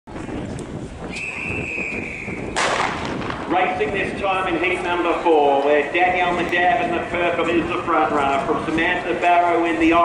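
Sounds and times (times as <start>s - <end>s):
starting gun shot with echo: 2.6s - 3.6s.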